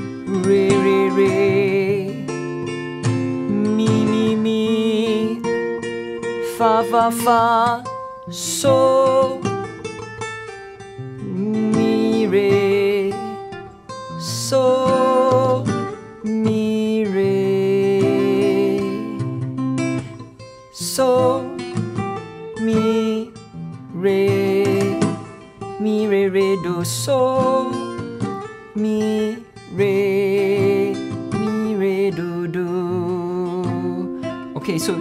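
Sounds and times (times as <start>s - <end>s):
fingerstyle acoustic guitar: 0.0s - 35.0s.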